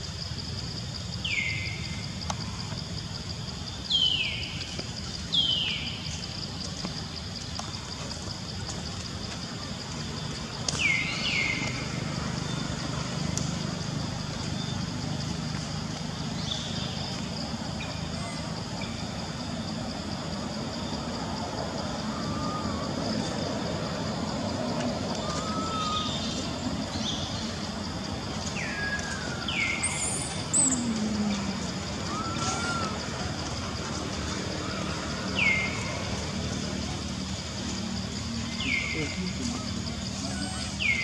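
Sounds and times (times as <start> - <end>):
small wavering calls: 25.1 - 27.6, 28.6 - 33.6.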